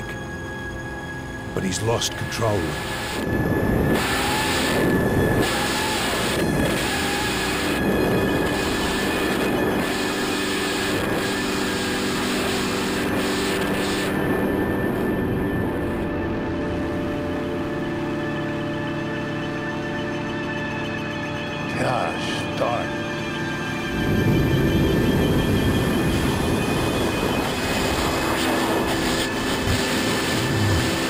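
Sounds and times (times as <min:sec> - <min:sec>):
steady high whine: 0:00.0 - 0:31.0
tense droning background music: 0:00.0 - 0:31.0
dense rushing noise: 0:23.9 - 0:31.0.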